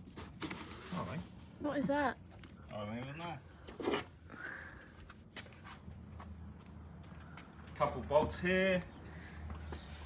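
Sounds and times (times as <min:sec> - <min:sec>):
footsteps around a car: 0:01.3 - 0:10.0.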